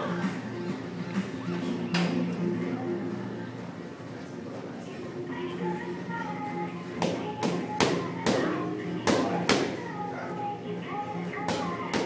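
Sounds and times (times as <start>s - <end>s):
background music: 0.0s - 4.0s, 4.8s - 12.0s.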